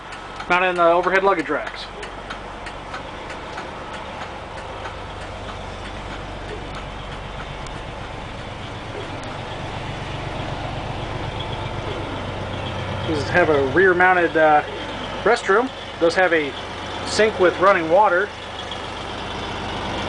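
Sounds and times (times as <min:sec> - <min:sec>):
bus engine idling: 0:00.0 - 0:20.0.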